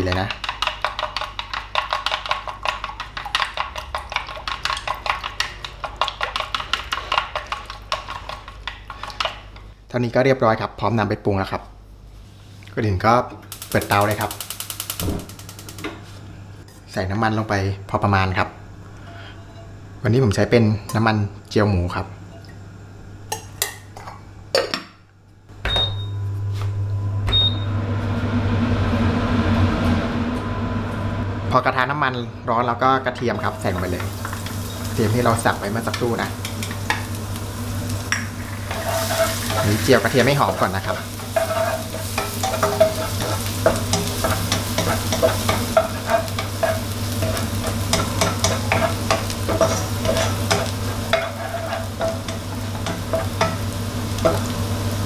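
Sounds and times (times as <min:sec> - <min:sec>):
wooden spatula stirring: 0:00.1 - 0:09.4, 0:38.6 - 0:54.5
gas stove igniter clicking: 0:13.5 - 0:16.0
garlic sizzling in fat: 0:13.5 - 0:16.2, 0:33.1 - 0:55.0.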